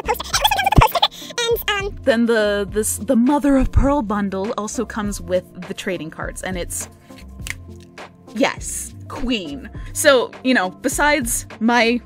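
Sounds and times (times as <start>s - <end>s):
person making silly noises: 0.0s - 1.4s.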